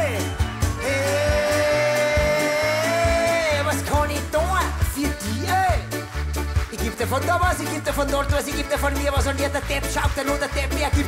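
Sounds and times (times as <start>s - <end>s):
reggae band pulsing bass line: 0.0s - 11.0s
man singing a long high note: 0.8s - 3.8s.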